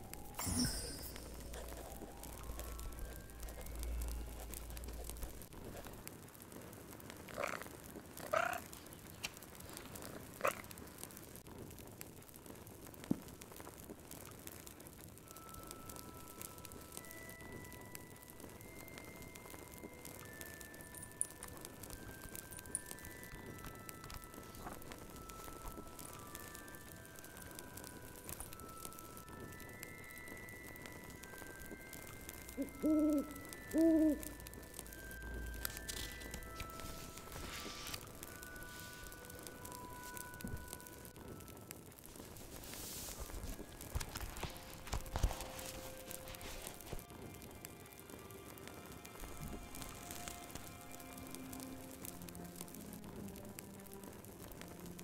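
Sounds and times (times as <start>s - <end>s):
soft sustained music notes: 0.0s - 6.0s, 15.2s - 55.0s
fireplace crackling: 0.0s - 55.0s
owl hooting: 8.3s - 8.6s, 32.5s - 34.4s.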